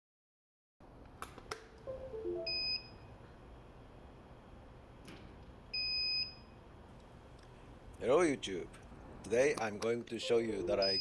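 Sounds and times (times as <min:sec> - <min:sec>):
falling electronic tones: 0:01.9 - 0:03.0
electronic beeper beeps: 0:01.9 - 0:03.1, 0:10.2 - 0:11.0.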